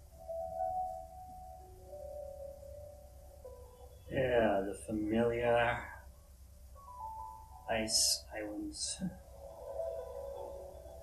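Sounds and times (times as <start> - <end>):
soft sustained chord music: 0.0 - 11.0.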